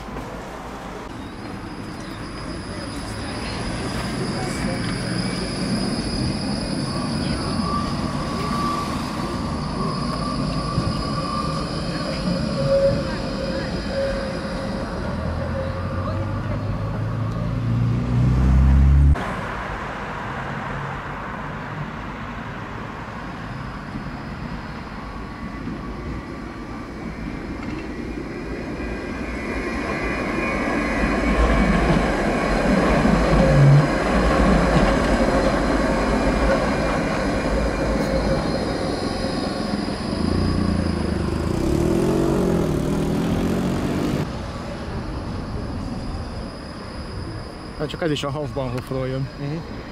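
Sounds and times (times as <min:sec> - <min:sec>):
tram wheels rolling on rail: 0:00.0 - 0:17.9, 0:23.1 - 0:49.9
tram passing with whine: 0:00.0 - 0:49.9.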